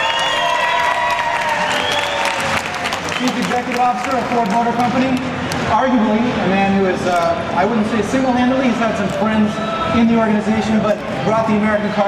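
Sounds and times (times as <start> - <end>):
audience applauding: 0.0 - 5.2.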